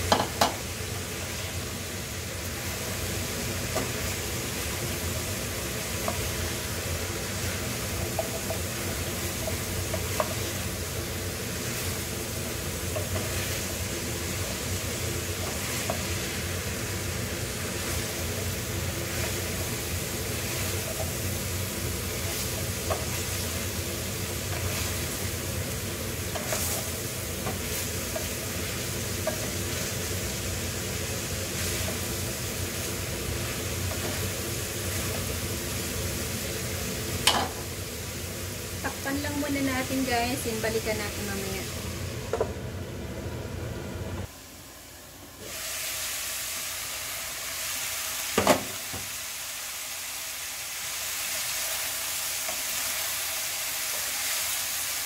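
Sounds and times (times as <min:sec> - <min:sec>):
food sizzling in a frying pan: 0:00.0 - 0:55.0
wooden spatula scraping and tapping: 0:08.0 - 0:08.6, 0:09.4 - 0:10.5, 0:22.2 - 0:23.3, 0:26.3 - 0:28.3.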